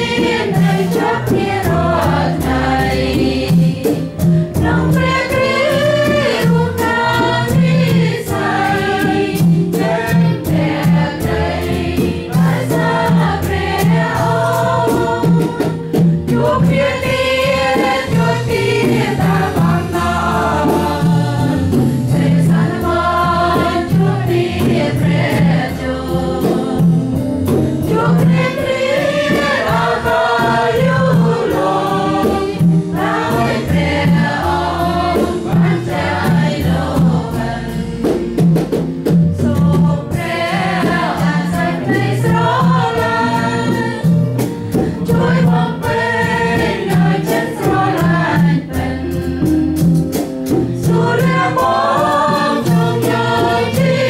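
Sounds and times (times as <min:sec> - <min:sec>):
choir singing a hymn: 0:00.0 - 0:54.0
percussion: 0:00.0 - 0:54.0.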